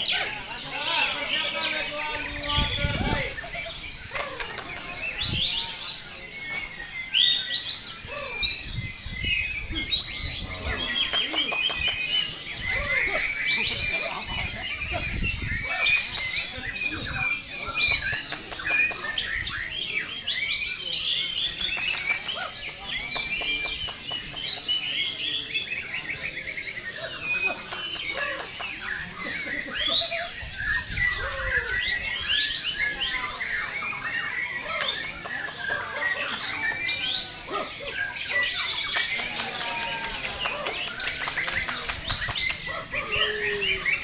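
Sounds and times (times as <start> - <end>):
birds singing whistles and chatter: 0.0 - 44.0.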